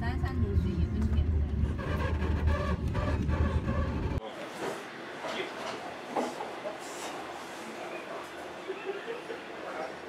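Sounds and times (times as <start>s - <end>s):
people talking: 0.0s - 1.7s
train rumble inside carriage: 0.0s - 4.2s.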